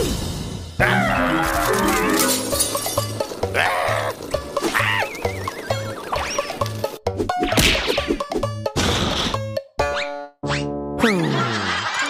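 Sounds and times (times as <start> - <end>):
bouncy cartoon music: 0.8 - 12.0.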